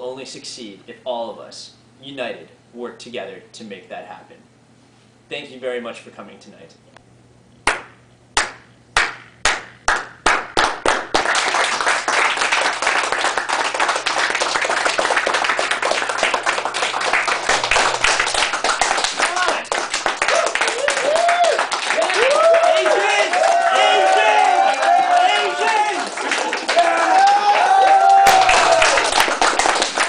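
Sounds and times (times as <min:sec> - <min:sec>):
group clapping: 0:07.6 - 0:30.0
voices cheering: 0:14.8 - 0:30.0.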